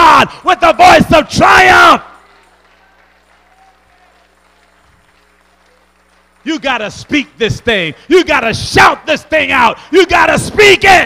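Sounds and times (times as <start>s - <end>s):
echo of man shouting: 0.0s - 2.2s, 8.1s - 11.0s
faint clapping: 2.2s - 7.8s.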